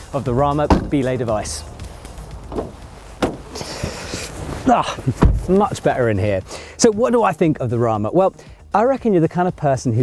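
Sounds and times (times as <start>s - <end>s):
car door knock: 0.6s - 1.0s, 2.5s - 4.0s, 5.1s - 5.5s
car door click: 0.6s - 1.1s, 2.4s - 4.2s, 5.1s - 5.5s
clothing rustling against seat: 0.9s - 6.3s.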